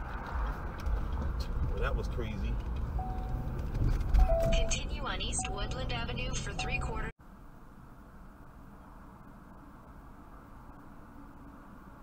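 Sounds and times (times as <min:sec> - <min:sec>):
car cabin engine and road noise: 0:00.0 - 0:12.0
man talking: 0:01.8 - 0:02.6.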